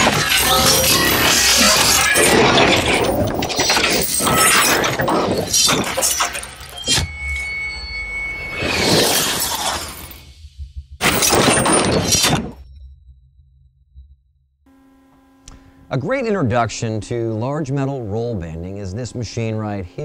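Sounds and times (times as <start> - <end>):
high ringing tone: 0.3 - 15.4.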